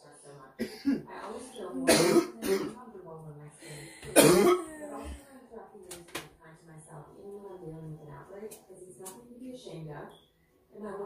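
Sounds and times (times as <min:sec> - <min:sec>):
person coughing: 0:00.6 - 0:01.1, 0:01.8 - 0:02.8, 0:04.0 - 0:04.8.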